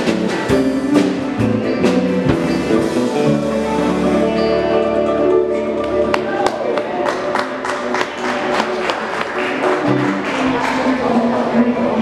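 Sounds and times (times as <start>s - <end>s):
live band chord: 0.0s - 10.4s
audience clapping: 5.8s - 11.5s.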